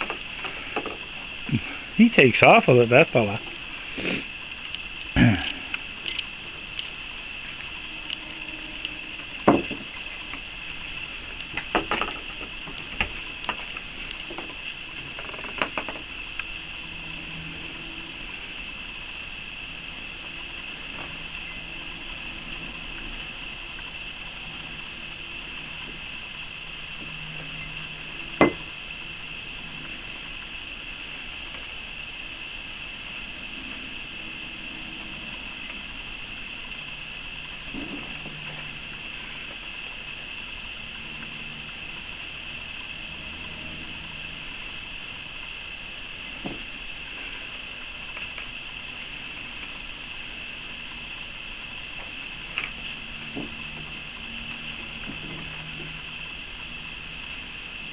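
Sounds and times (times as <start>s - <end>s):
night insects droning: 0.0s - 57.9s.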